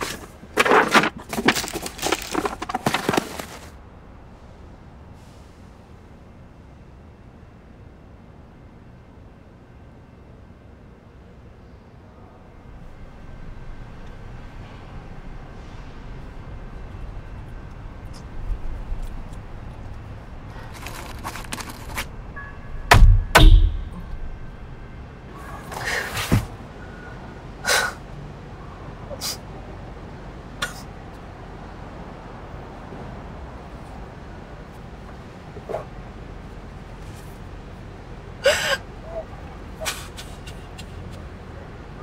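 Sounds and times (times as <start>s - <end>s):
loud deep thuds: 22.9s - 24.4s.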